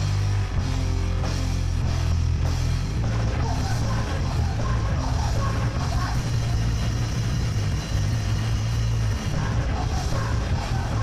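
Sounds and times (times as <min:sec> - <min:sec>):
heavy rock band playing: 0:00.0 - 0:11.0.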